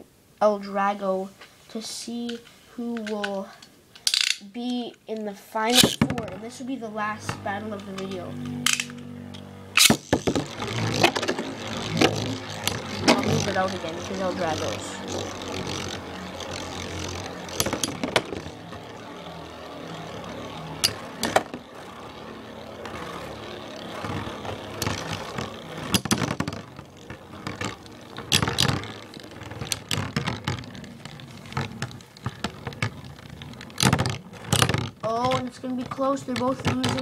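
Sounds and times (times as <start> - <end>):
spinning tops clacking: 4.0 - 4.5, 5.7 - 37.0
spinning tops whirring: 4.0 - 4.5, 5.6 - 37.0.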